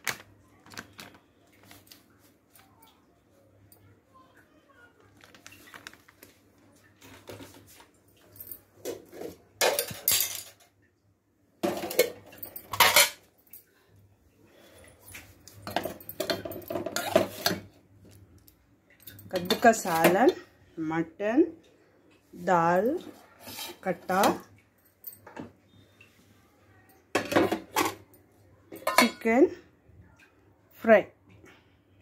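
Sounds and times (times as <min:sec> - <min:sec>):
steel pots and utensils clattering: 0:08.4 - 0:10.8, 0:11.6 - 0:13.3, 0:15.6 - 0:17.8, 0:19.0 - 0:20.5, 0:22.8 - 0:25.5, 0:27.1 - 0:28.1, 0:28.7 - 0:29.4.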